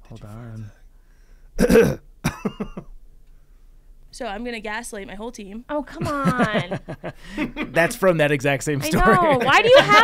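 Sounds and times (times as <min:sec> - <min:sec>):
throaty sound: 0:01.6 - 0:02.0
person coughing loudly: 0:01.6 - 0:02.8.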